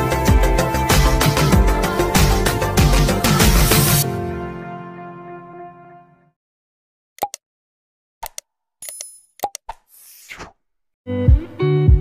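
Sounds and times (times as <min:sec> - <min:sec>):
mouse-style clicks: 0:07.2 - 0:07.4, 0:08.2 - 0:09.8.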